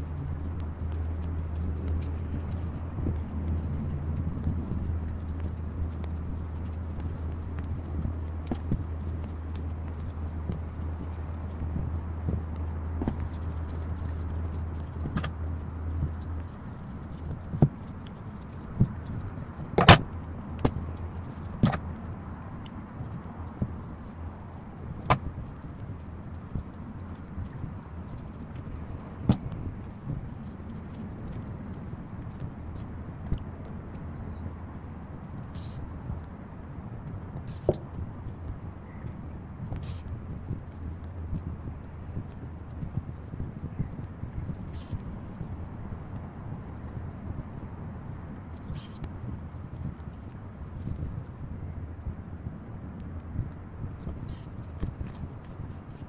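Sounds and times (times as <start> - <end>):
rustling of stuffing crochet: 0.0 - 33.6, 37.1 - 47.7, 48.4 - 51.6, 53.4 - 56.0
small clicks and taps: 0.0 - 34.1
steady low hum: 0.0 - 56.0.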